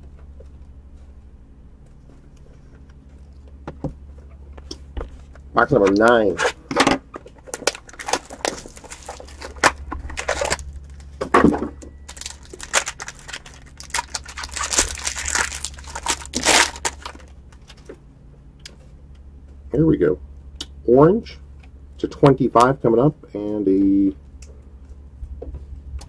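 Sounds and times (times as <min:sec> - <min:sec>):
box handling clicks and rustles: 0:05.6 - 0:18.0
wrapping crinkling and tearing: 0:07.4 - 0:11.2, 0:12.0 - 0:17.9.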